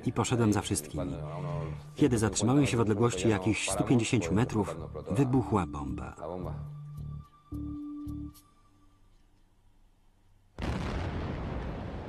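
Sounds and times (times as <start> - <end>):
bomb explosion: 10.6 - 12.0.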